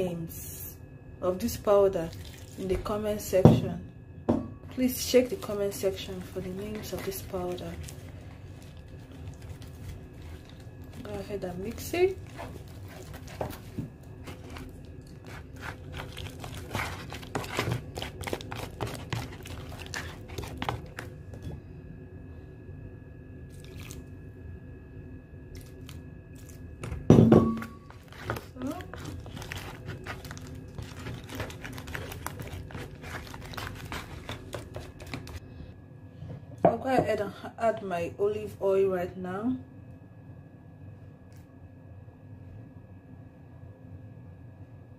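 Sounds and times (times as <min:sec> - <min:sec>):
spoon scraping plastic tub: 0:04.7 - 0:21.4, 0:27.5 - 0:35.4
metal spoon stirring paste: 0:04.7 - 0:21.5, 0:27.6 - 0:35.4.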